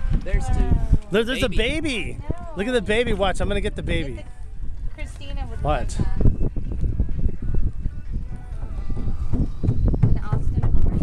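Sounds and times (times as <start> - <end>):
faint voices: 0.0 - 11.0
wind rumble on microphone: 0.0 - 11.0.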